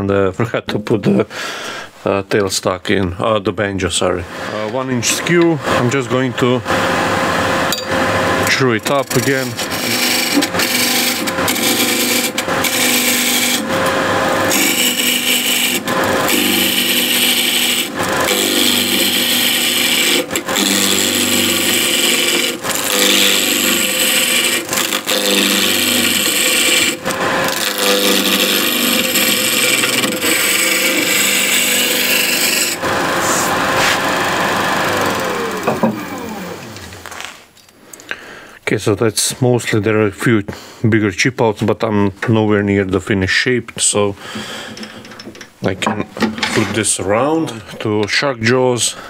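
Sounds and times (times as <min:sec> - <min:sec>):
lathe motor hum: 0:04.4 - 0:37.2
chisel cutting spinning wood: 0:04.5 - 0:37.2.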